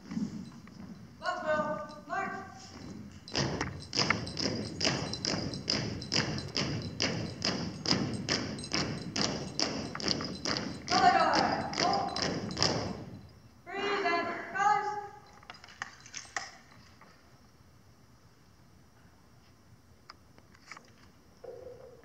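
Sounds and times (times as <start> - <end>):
marching footsteps on stage boards: 0.0 - 13.3
person calling out: 10.9 - 12.1.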